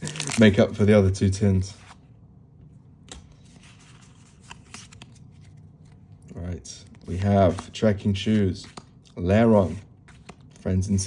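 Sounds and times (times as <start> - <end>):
trading cards rustling: 3.1 - 11.0.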